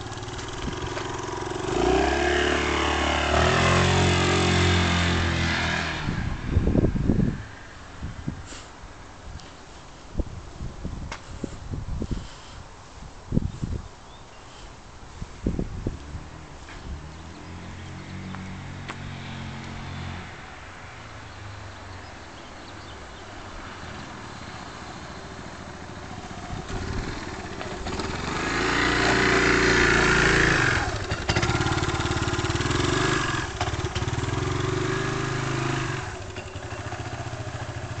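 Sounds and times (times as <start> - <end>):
scooter engine approaching: 0.0 - 7.7, 15.9 - 38.0.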